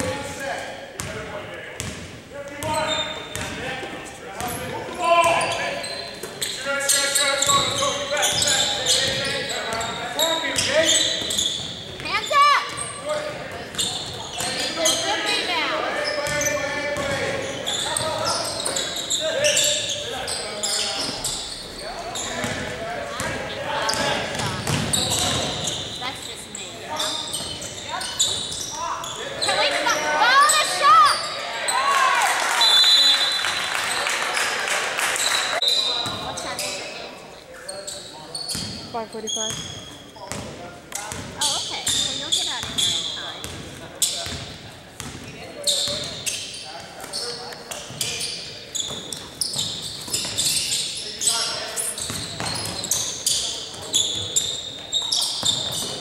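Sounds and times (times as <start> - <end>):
indistinct voices in a hall: 0.0 - 56.0
basketball bouncing on hardwood floor: 23.9 - 25.5.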